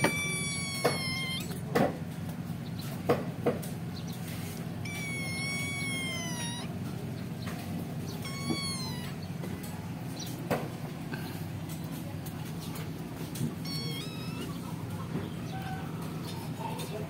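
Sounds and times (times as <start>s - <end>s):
kitten mewing: 0.0s - 1.7s, 4.8s - 6.9s, 8.0s - 9.5s, 13.4s - 16.8s.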